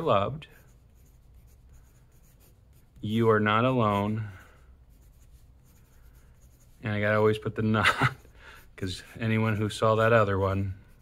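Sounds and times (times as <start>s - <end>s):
pencil writing on paper: 0.5s - 6.8s.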